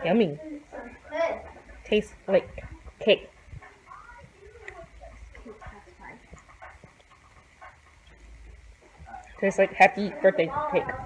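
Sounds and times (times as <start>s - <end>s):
faint voices talking: 0.0s - 11.0s
low steady rumble: 0.0s - 11.0s.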